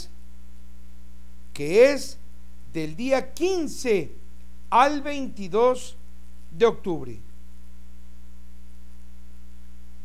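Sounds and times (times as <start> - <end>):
electrical mains hum: 0.0 - 10.0
person speaking: 1.6 - 7.2.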